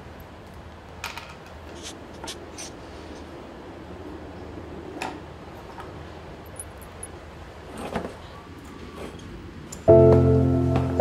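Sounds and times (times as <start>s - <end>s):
low steady hum: 9.4s - 11.0s.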